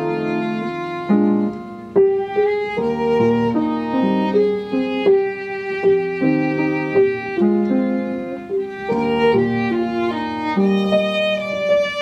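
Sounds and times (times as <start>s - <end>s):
upright piano chords: 0.0s - 12.0s
violin melody: 0.0s - 12.0s.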